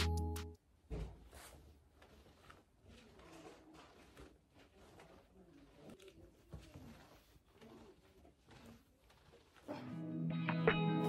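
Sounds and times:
soft rustles on exercise mat: 0.8 - 10.0.

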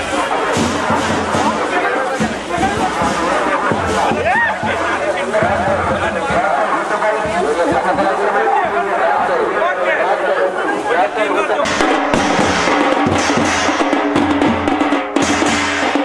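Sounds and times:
music: 0.0 - 9.5, 11.5 - 16.0
large drums beating: 0.0 - 9.6, 11.6 - 16.0
mixed voices: 0.0 - 15.0.

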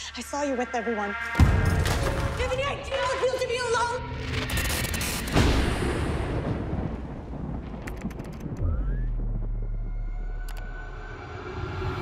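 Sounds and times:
sharp clicks: 4.4 - 5.5, 7.8 - 8.8, 10.4 - 10.7.

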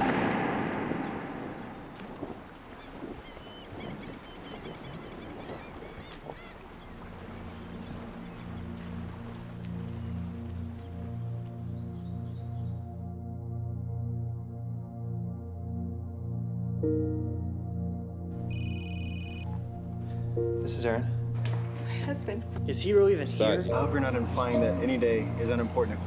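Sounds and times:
low ambient synth drone: 7.4 - 20.6
small high chirps: 18.5 - 19.6.

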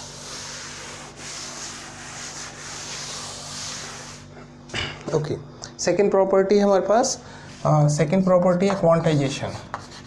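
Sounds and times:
cloth wiping chalk off blackboard: 0.0 - 4.3.

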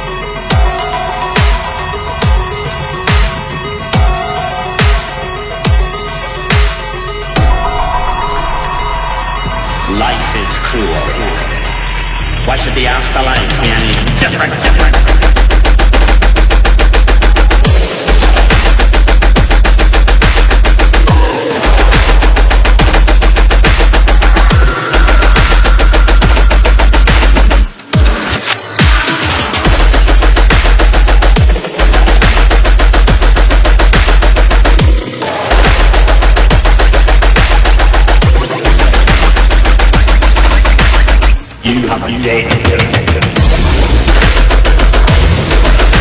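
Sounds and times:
pulsing deep bass: 0.0 - 28.1, 29.6 - 46.0
rapid stuttering drum hits: 13.4 - 28.2, 28.8 - 41.5, 42.7 - 46.0.

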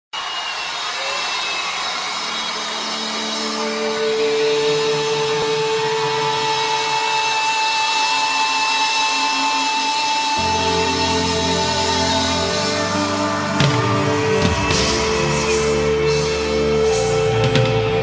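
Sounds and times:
crowd noise: 0.1 - 18.0
long held instrument notes: 2.2 - 18.0.

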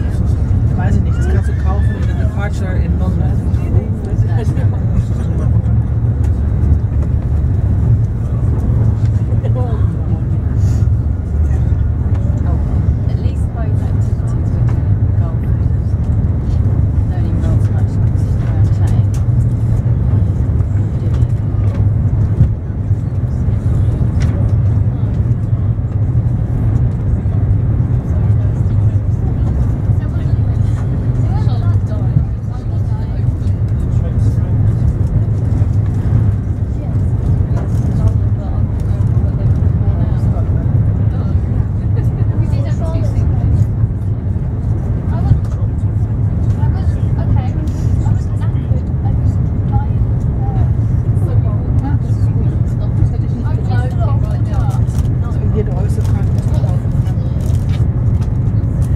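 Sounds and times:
faint passenger voices: 0.0 - 58.9
train interior rumble: 0.0 - 58.9.

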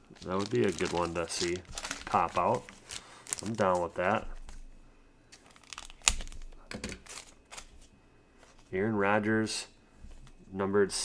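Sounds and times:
foil wrapper crinkling: 0.0 - 4.6, 5.3 - 8.7.

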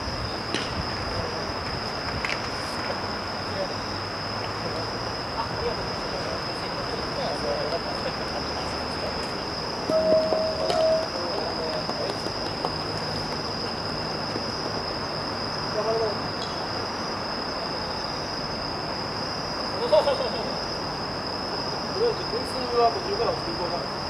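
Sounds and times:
steady hiss: 0.0 - 24.0
high-pitched whine: 4.6 - 12.1.

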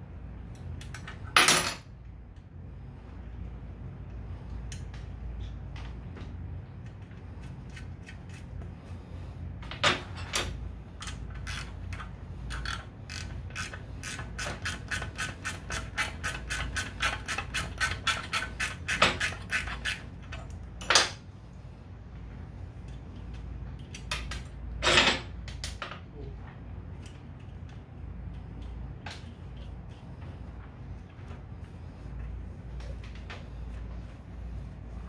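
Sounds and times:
ratchet wrench clicking: 11.0 - 20.5.

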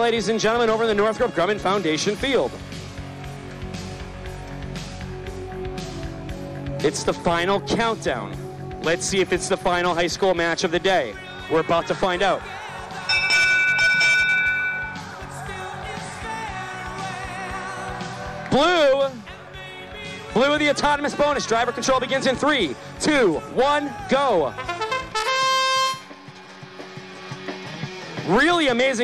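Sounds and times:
background music with steady beat: 0.0 - 29.0
held signal tone: 13.1 - 15.2.

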